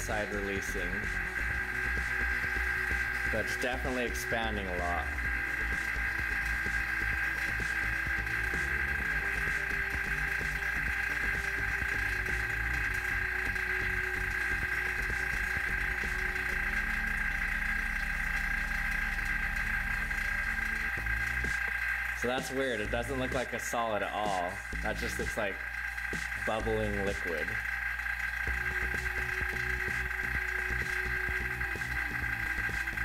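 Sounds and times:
vacuum pump humming and whining: 0:00.0 - 0:33.0.

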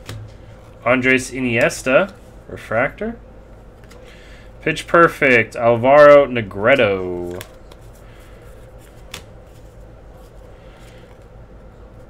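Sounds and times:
steady low hum: 0:00.0 - 0:12.0
cards being flipped by hand: 0:03.8 - 0:04.0, 0:06.7 - 0:11.3.

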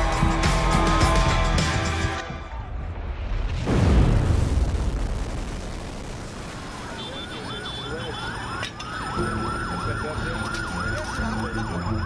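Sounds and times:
siren holding steady high note: 0:06.9 - 0:12.0
siren yelping: 0:06.9 - 0:12.0.

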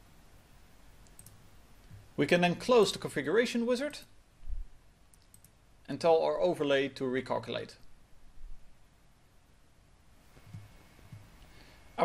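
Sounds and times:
computer mouse clicks: 0:01.0 - 0:02.0, 0:05.1 - 0:05.6.

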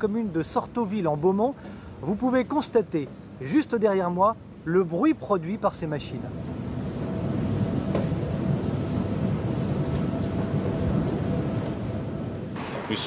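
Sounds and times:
wind turbines rumbling: 0:00.0 - 0:13.0.

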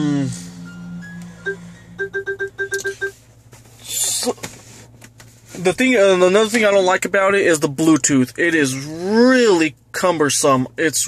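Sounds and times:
electronic beeps: 0:00.4 - 0:03.2
two-pitch ringtone beeps: 0:00.5 - 0:03.2.

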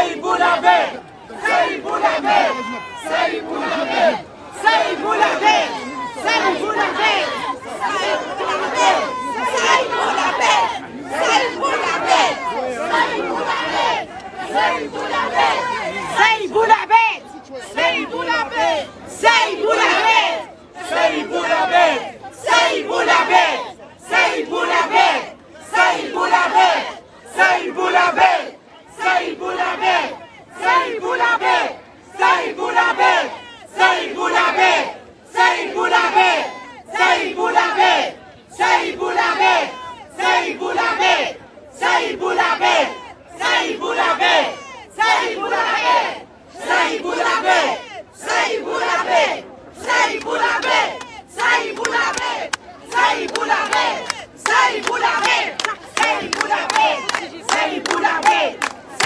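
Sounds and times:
crowd chanting in unison: 0:00.0 - 0:59.0.

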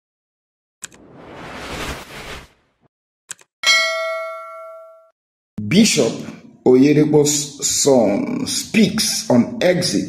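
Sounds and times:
bright bell-like ding: 0:03.6 - 0:05.2.

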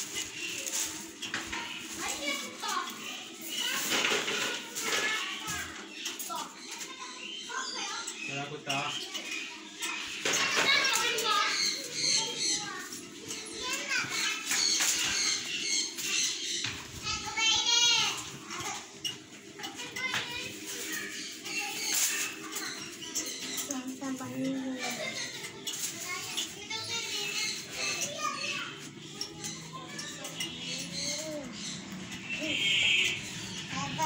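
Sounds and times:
children chattering and calling: 0:00.0 - 0:34.0.

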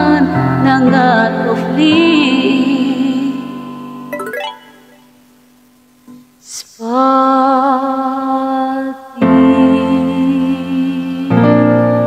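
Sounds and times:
woman singing: 0:00.0 - 0:03.4, 0:06.5 - 0:11.8.

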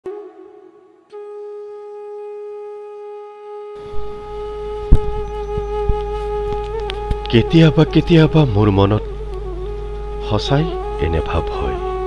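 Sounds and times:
long held flute-like note: 0:00.0 - 0:12.0
low hum and hiss: 0:03.8 - 0:12.0.

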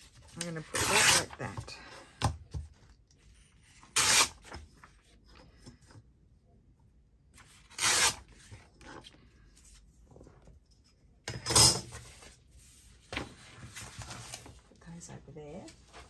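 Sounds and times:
paper tearing against metal ruler: 0:00.5 - 0:01.4, 0:03.8 - 0:04.5, 0:07.6 - 0:08.3
faint paper rustling: 0:11.9 - 0:16.0.

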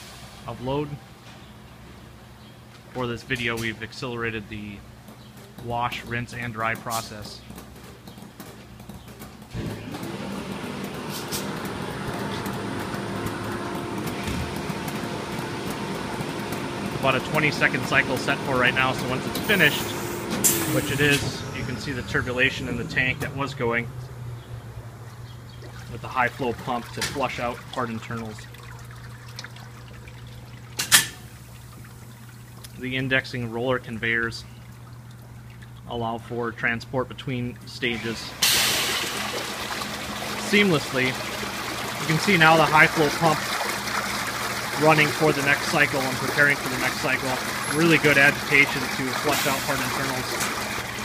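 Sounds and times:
water churning in a tank: 0:00.0 - 0:00.8, 0:09.5 - 0:51.0
pump humming: 0:09.5 - 0:51.0.

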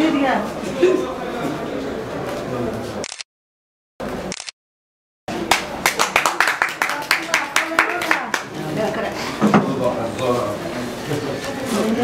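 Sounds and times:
small group clapping: 0:05.3 - 0:08.9.

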